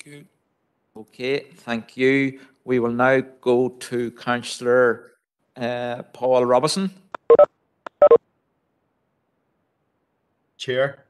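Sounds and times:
short electronic beeps: 7.2s - 8.2s.

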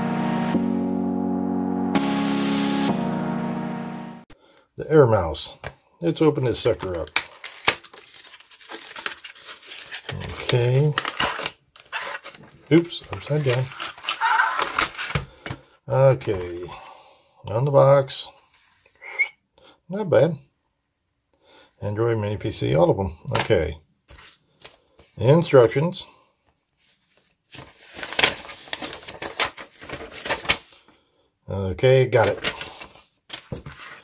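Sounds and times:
paper rustling and crackling: 6.4s - 15.6s, 24.1s - 25.2s, 26.5s - 30.9s, 32.2s - 34.0s
cardboard box rustling scrape: 32.6s - 34.0s.

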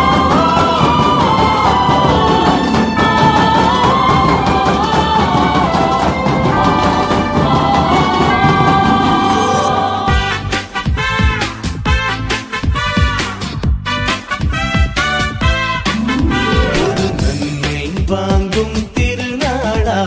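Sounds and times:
wavering melody: 15.9s - 18.0s.

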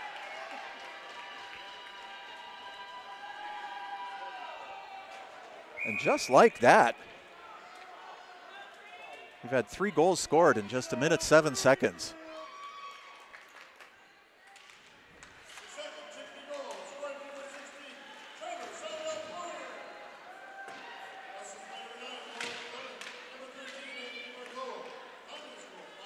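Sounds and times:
spectators talking and calling out: 5.8s - 7.0s, 9.4s - 12.1s.

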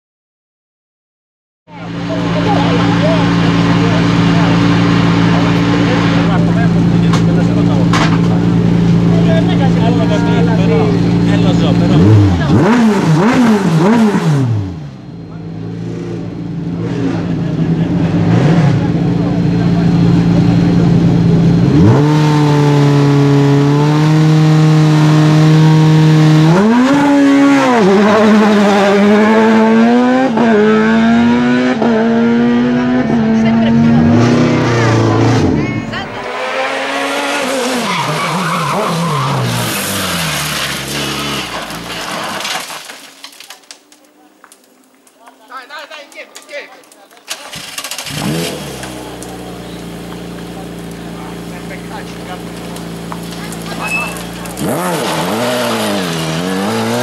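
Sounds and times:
harsh engine sound: 1.7s - 42.6s, 47.3s - 57.0s
race car engine revving: 1.7s - 42.6s, 47.3s - 57.0s.

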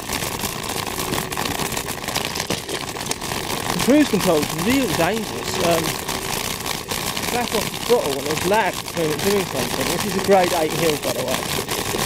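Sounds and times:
small rattles: 0.0s - 12.0s
scooter tyre road noise: 3.8s - 12.0s.

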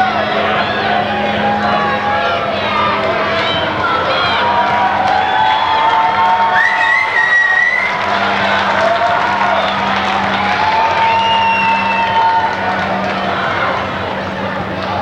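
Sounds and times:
crowd cheering and shouting: 0.0s - 15.0s.

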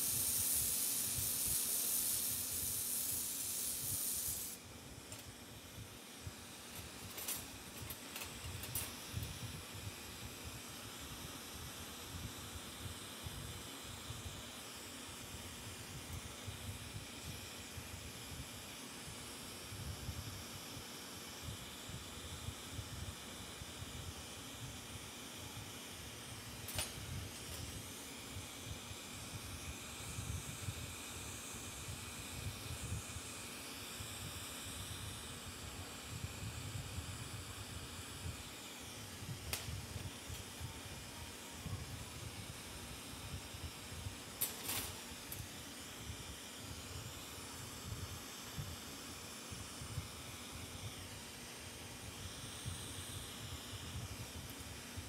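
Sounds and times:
torch flame hissing: 0.0s - 55.0s.

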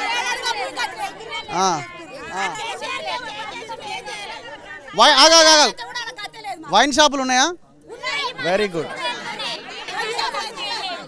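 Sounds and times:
women chattering excitedly: 0.0s - 7.0s, 7.8s - 11.0s.

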